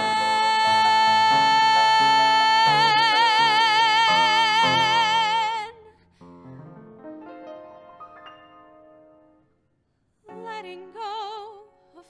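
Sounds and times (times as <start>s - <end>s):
instrumental accompaniment: 6.3s - 9.6s.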